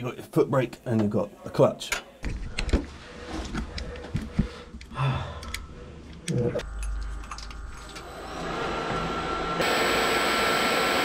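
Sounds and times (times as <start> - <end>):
machine whirring with whine: 6.6 - 11.0.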